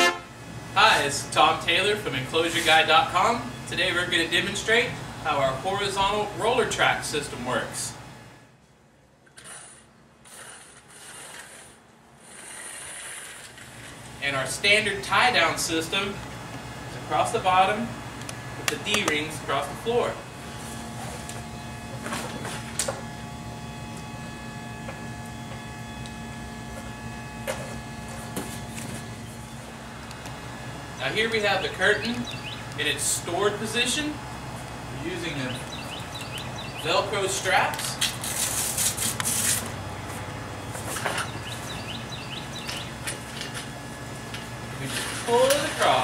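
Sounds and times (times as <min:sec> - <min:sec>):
steady low hum: 0:00.0 - 0:46.0
birds chirping: 0:29.4 - 0:33.8, 0:34.7 - 0:37.4, 0:40.5 - 0:43.8
velcro ripping: 0:38.0 - 0:39.7.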